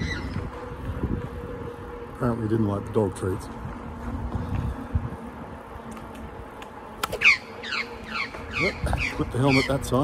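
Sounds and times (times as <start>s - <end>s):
wind rumble on microphone: 0.0s - 10.0s
magpie harsh falling calls: 7.2s - 9.9s.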